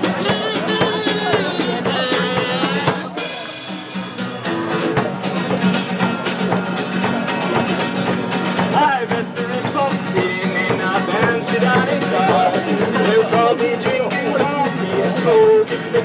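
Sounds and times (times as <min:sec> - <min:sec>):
bass drum beat: 0:00.0 - 0:16.0
strummed acoustic guitar: 0:00.0 - 0:16.0.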